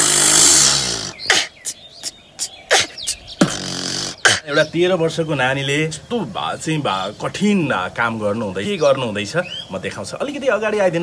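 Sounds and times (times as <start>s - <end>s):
boy beatboxing: 0.0s - 4.6s.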